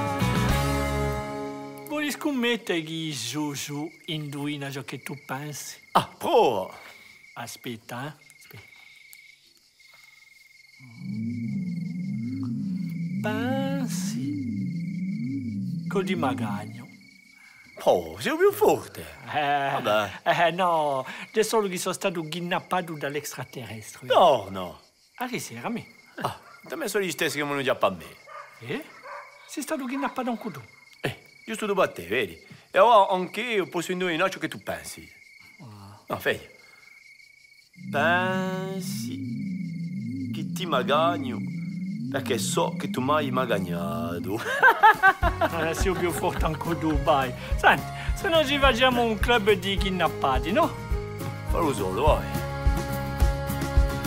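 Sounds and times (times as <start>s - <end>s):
crickets chirping: 0.0s - 54.0s
man's voice murmuring: 6.0s - 6.9s, 26.2s - 26.4s, 35.6s - 36.5s, 37.8s - 39.1s, 45.3s - 49.6s
eerie wavering electronic tone: 10.8s - 17.5s, 37.7s - 47.6s
man's long drawn-out voice: 13.2s - 14.6s.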